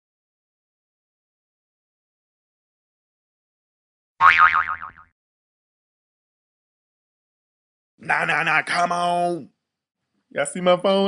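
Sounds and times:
cartoon boing sound effect: 4.2s - 5.1s.

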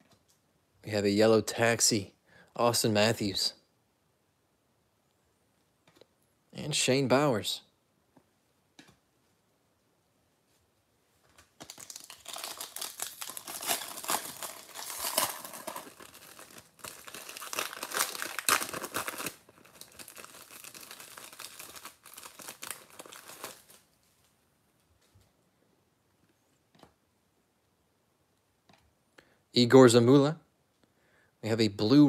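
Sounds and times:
plastic wrapper crinkling: 11.6s - 24.3s.

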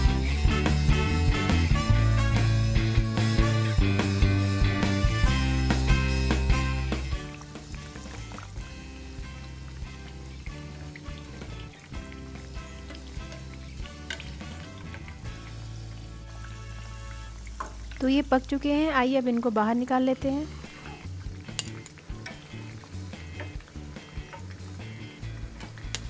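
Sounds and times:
background music: 0.0s - 26.0s
biscuits deep-frying in oil: 0.0s - 26.0s.

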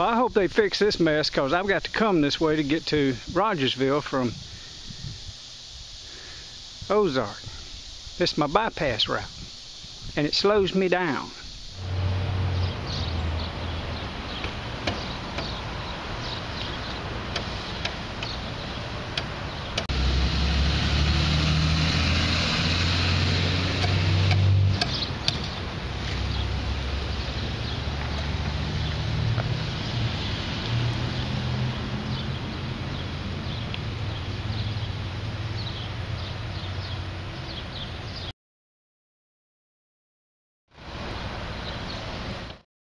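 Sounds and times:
truck passing close: 11.8s - 37.5s
car engine and road noise: 11.8s - 38.3s, 40.8s - 42.6s.

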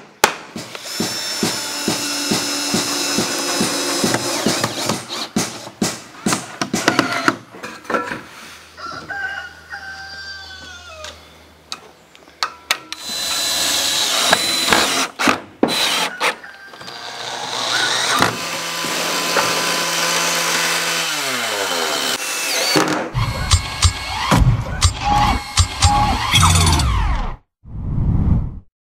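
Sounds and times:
power tool running: 17.0s - 27.3s.

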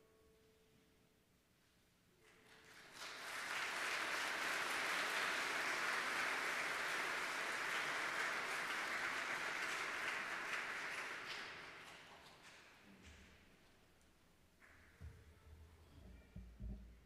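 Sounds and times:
audience applauding: 2.2s - 12.8s.

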